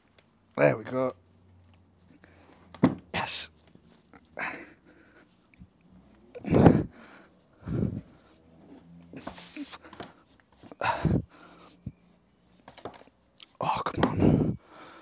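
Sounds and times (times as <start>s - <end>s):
man grunting and breathing heavily: 4.2s - 5.4s, 6.3s - 8.4s, 9.2s - 12.0s, 13.6s - 15.0s.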